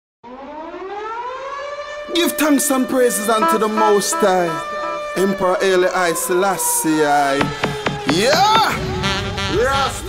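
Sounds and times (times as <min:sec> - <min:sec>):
air raid siren wailing: 0:00.2 - 0:10.0.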